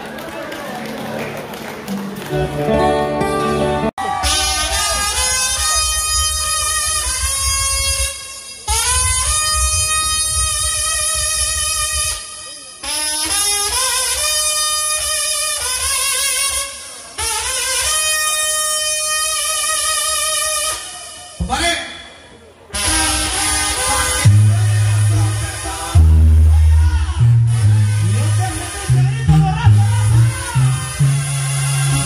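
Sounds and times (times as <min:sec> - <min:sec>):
brass band playing: 0:02.2 - 0:21.6, 0:22.7 - 0:32.0
trumpets: 0:04.0 - 0:21.9, 0:22.7 - 0:32.0
sousaphone low bass notes: 0:22.8 - 0:32.0.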